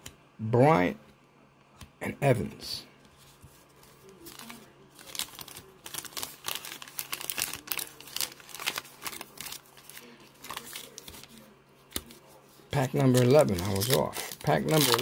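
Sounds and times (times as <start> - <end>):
foil wrappers crinkling: 3.7 - 15.0.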